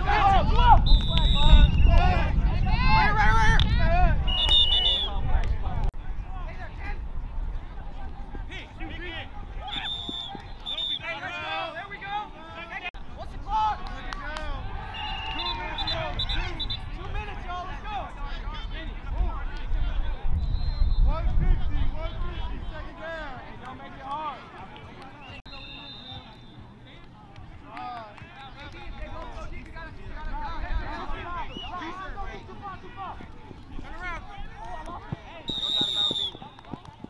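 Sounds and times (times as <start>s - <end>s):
people talking: 21.1s - 37.0s.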